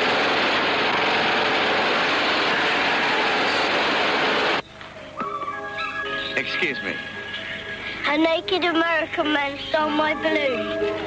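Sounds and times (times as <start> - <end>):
loud rushing noise: 0.0 - 4.6
music with held notes: 4.7 - 11.0.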